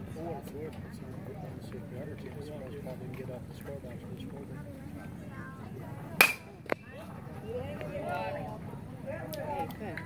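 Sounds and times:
metal bat striking ball: 6.2 - 6.5.

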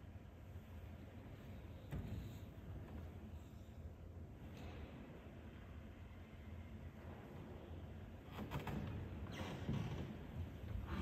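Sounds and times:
low steady hum: 0.0 - 9.3.

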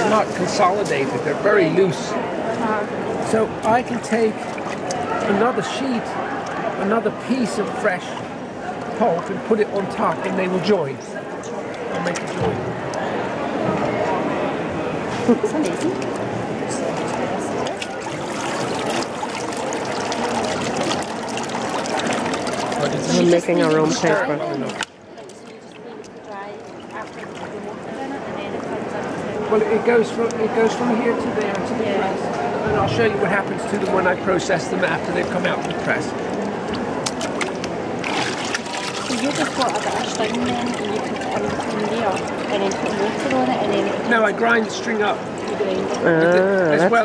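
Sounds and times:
background chatter of a busy hall: 0.0 - 47.0
steady background noise: 0.0 - 47.0
water trickling and dripping: 3.1 - 11.0, 17.0 - 29.3, 33.6 - 47.0.

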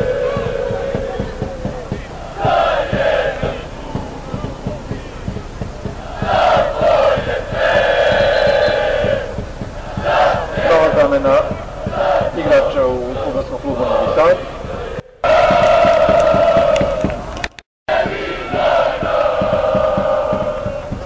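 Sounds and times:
football supporters chanting: 0.0 - 17.3, 17.9 - 21.0
crowd noise: 0.0 - 21.0.

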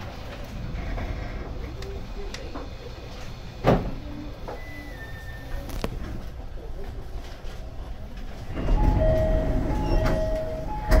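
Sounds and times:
train rumbling: 0.0 - 11.0
high-pitched train whine: 8.5 - 11.0.

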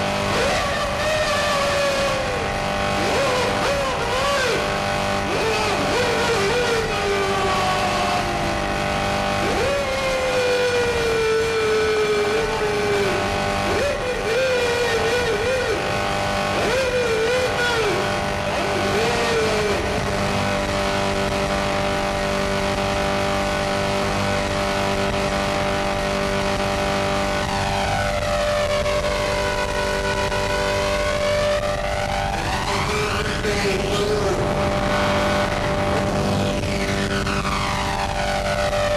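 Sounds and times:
harsh electronic noise music: 0.0 - 38.9.

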